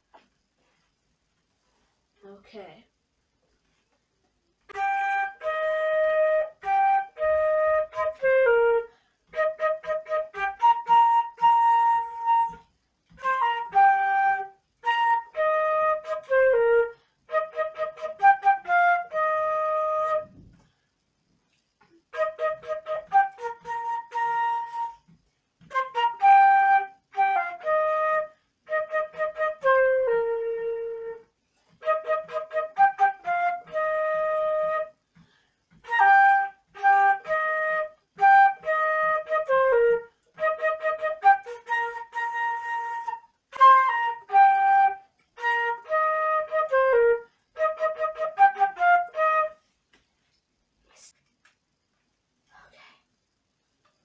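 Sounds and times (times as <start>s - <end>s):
solo flute melody: 4.7s - 20.7s, 22.0s - 35.0s, 35.7s - 49.7s.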